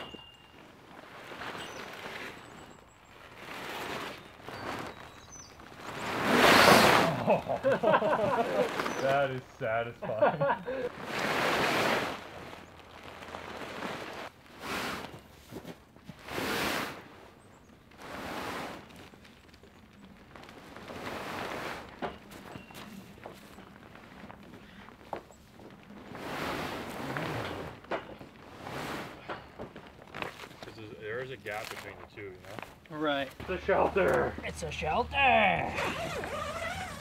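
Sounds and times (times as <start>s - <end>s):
canvas cover rustling: 0.0s - 37.0s
footsteps in snow: 0.0s - 37.0s.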